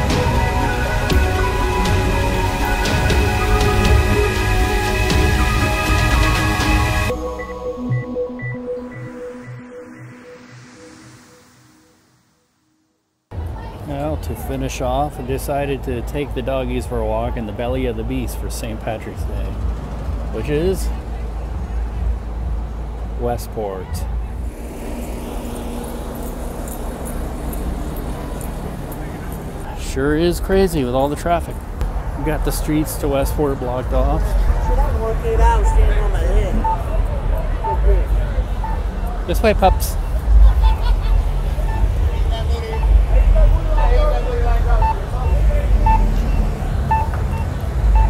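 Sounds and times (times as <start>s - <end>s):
short beeps: 7.1s - 10.8s, 35.6s - 40.2s, 41.7s - 42.1s, 43.7s - 48.0s
passers-by talking: 13.3s - 48.0s
car engines in slow traffic: 16.9s - 48.0s.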